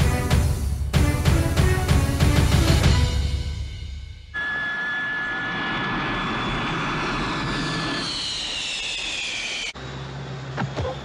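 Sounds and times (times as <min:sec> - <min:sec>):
high whistle: 0:04.3 - 0:09.8
falling whine: 0:04.3 - 0:11.0.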